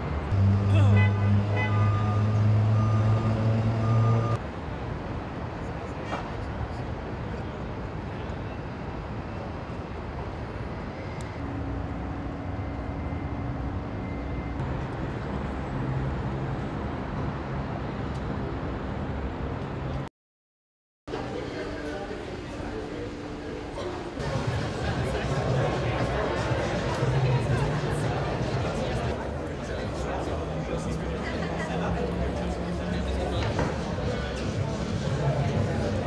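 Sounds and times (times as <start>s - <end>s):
vehicle engine low hum: 0.0s - 5.4s
road and street noise: 0.0s - 20.1s, 21.1s - 36.0s.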